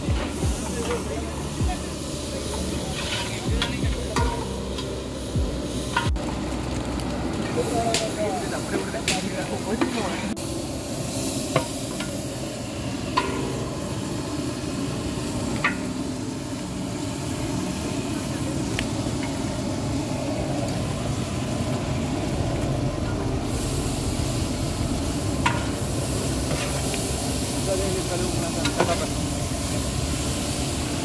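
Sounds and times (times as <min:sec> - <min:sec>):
food sizzling in oil: 0:00.0 - 0:31.0
ladle scraping pot: 0:02.9 - 0:04.4.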